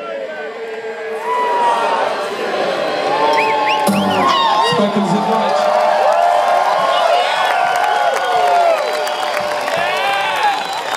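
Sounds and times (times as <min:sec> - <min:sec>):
crowd cheering and whooping: 0:01.1 - 0:10.9.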